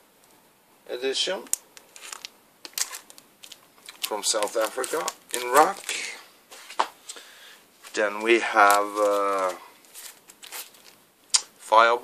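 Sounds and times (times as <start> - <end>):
soft rustle of handling: 1.8 - 11.9.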